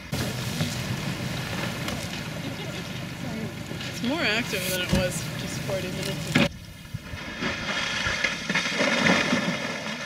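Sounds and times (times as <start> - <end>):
ice collapsing into water: 7.1 - 10.0.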